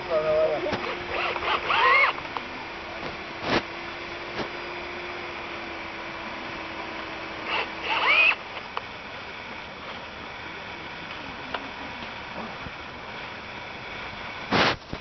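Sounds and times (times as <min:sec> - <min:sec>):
cordless drill motor whining: 0:00.3 - 0:08.9.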